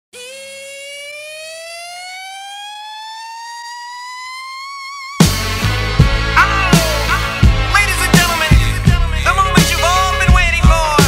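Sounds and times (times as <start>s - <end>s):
rising siren-like electronic tone: 0.1s - 5.7s.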